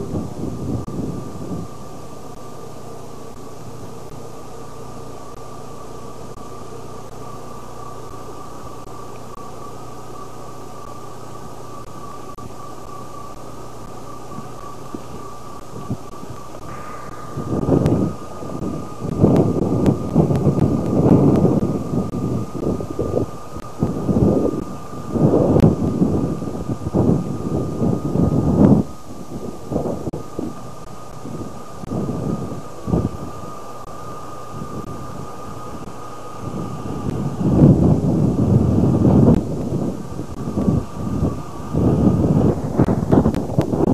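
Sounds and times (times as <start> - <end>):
car driving on gravel road: 0.0 - 43.9
road and wind rumbling: 0.0 - 43.9.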